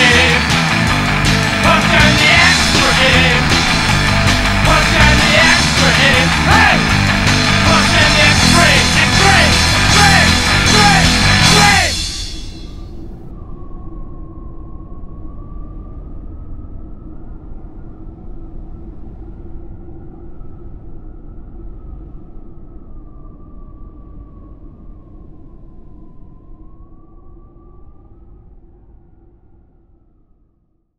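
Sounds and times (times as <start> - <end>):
low rumbling drone: 0.0 - 13.6.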